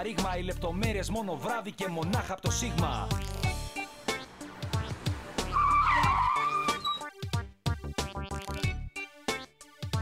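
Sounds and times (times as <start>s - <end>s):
rap beat: 0.0s - 5.6s
car tyres screeching: 4.3s - 7.1s.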